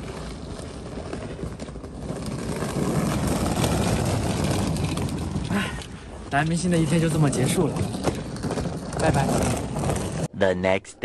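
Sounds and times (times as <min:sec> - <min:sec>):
suitcase wheels on paving stones: 0:00.0 - 0:10.3.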